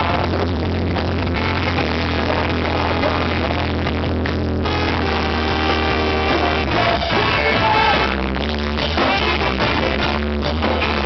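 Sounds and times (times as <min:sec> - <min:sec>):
ska band playing: 0:00.0 - 0:11.0.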